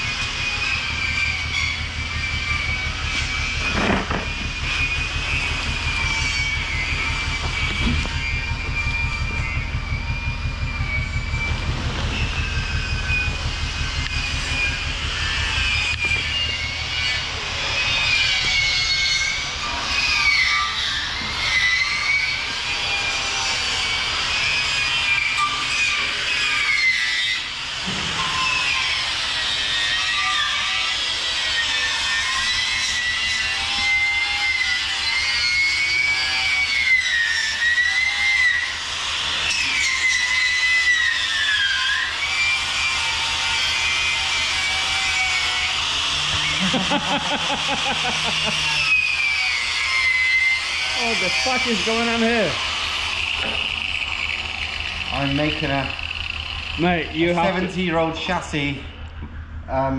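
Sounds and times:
angle grinder wire wheel on metal: 0.0 - 59.9.

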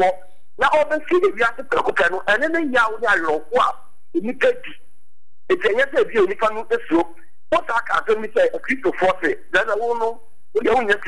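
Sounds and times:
man speaking over phone line: 0.0 - 4.8, 5.5 - 11.0
faint high whine: 0.0 - 11.0.

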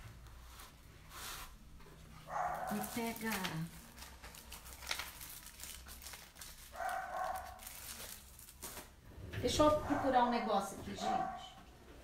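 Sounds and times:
paper rustling: 2.3 - 9.0.

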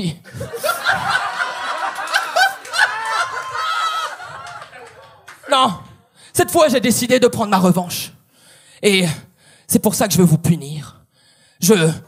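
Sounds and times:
room of people laughing: 0.2 - 5.4.

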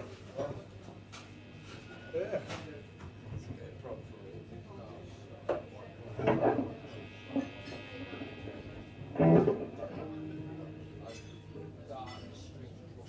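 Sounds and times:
guitar notes ringing: 5.6 - 13.0.

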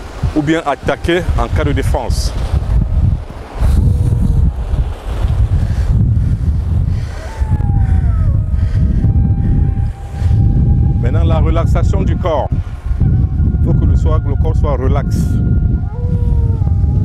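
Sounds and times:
surf breaking on beach: 0.0 - 15.2
wind buffeting microphone: 0.0 - 17.0
steady tone: 7.2 - 17.0.

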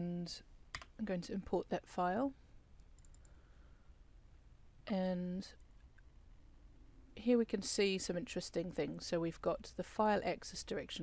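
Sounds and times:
faint room noise: 0.0 - 11.0
computer mouse clicks: 2.8 - 3.4.

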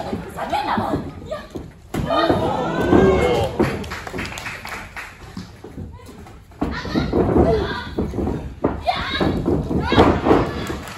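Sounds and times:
women shouting and yelling: 0.4 - 3.6.

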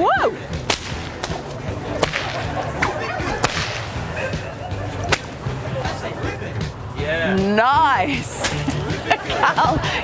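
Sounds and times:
whip cracking: 0.6 - 4.0, 5.0 - 5.4, 8.4 - 8.8.

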